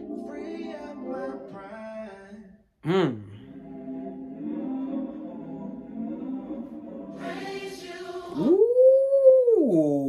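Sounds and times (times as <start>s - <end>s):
church choir singing: 0.0s - 2.5s, 3.5s - 8.6s
man singing held ooh: 0.0s - 3.4s, 8.3s - 10.0s.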